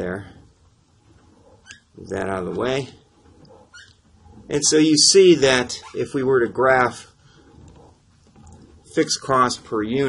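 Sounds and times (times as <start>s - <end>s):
faint room noise: 0.0s - 10.0s
man narrating: 2.0s - 3.0s, 4.5s - 7.1s, 8.9s - 10.0s.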